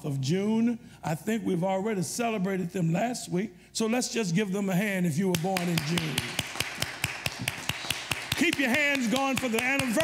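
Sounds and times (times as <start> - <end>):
hands clapping: 5.3 - 10.0.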